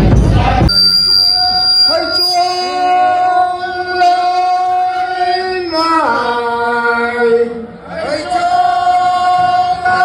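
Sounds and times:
thin high steady tone: 0.7s - 3.4s
group of singers chanting: 7.8s - 10.0s.

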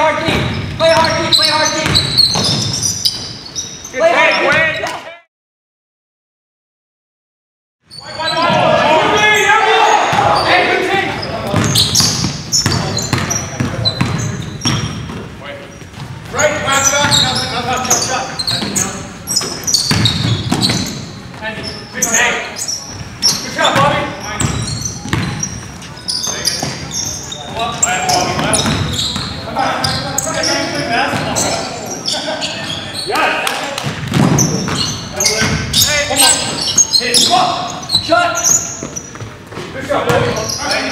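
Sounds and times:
basketball bouncing on hardwood floor: 1.8s - 2.7s, 11.5s - 15.2s, 19.8s - 20.9s, 23.8s - 25.4s, 28.3s - 29.3s, 33.8s - 35.6s
players shouting indistinctly: 8.0s - 11.2s.

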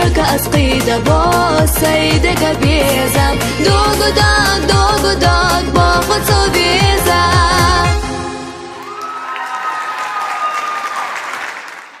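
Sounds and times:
song music: 0.0s - 9.3s
audience applause: 8.8s - 12.0s.

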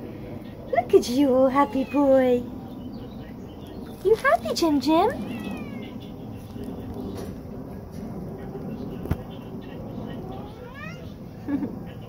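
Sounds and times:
cat meowing: 1.5s - 2.5s, 5.1s - 6.1s, 10.4s - 11.2s.

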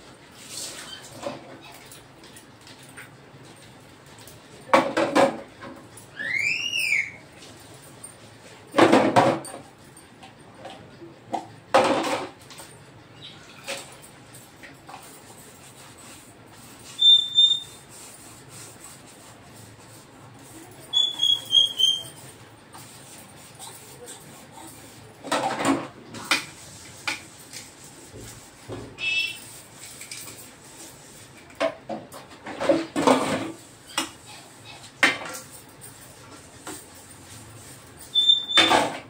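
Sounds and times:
wet dish squeaking: 16.9s - 17.9s, 20.9s - 22.2s, 38.1s - 38.7s.

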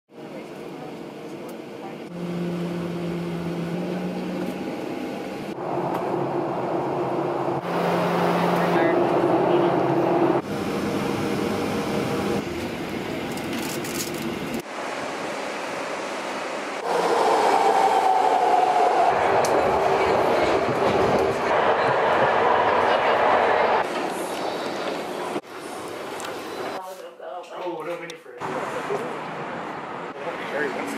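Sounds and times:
train running with falling whine: 0.2s - 26.8s
vehicle engine hum: 1.9s - 14.6s.

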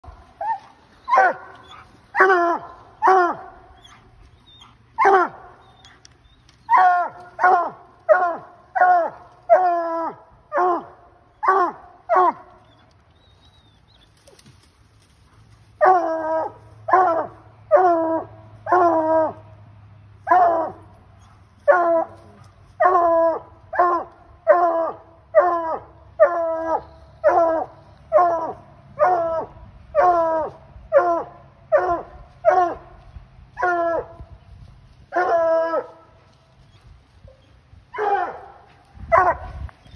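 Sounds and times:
dog barking: 0.5s - 2.4s, 5.0s - 5.4s, 6.7s - 9.1s, 38.0s - 39.6s.

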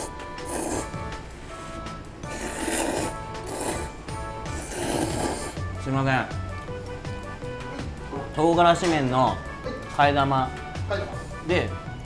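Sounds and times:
noodles being slurped: 0.0s - 1.0s, 2.3s - 5.6s.

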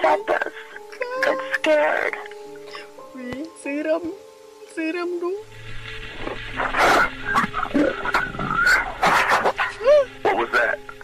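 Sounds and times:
harsh creature-like noises: 6.1s - 11.0s.

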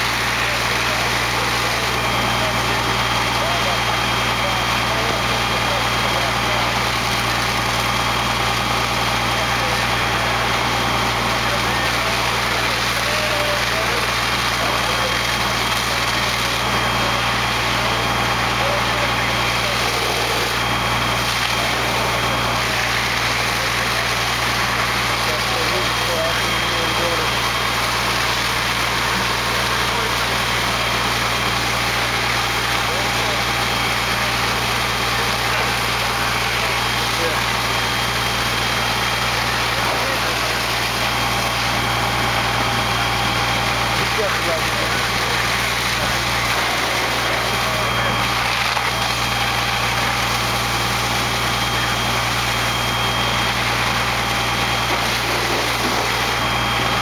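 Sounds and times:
diesel engine running under load: 0.0s - 57.0s.

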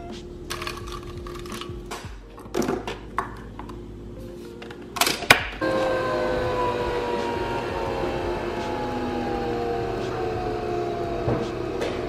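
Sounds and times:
coffee machine whirring: 0.4s - 1.9s, 3.1s - 12.0s.

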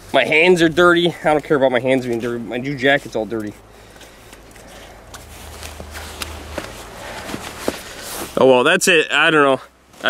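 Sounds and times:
faint rustling: 0.0s - 8.6s.

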